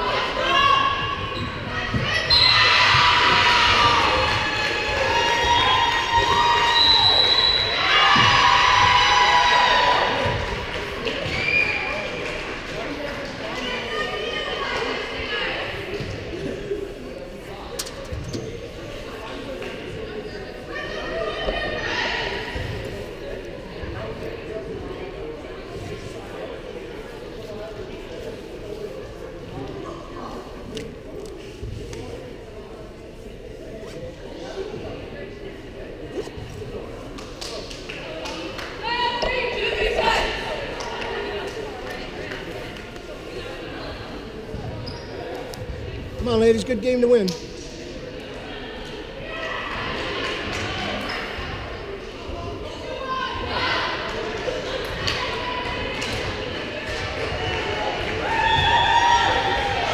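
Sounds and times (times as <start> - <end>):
murmur of people talking: 0.0 - 59.9.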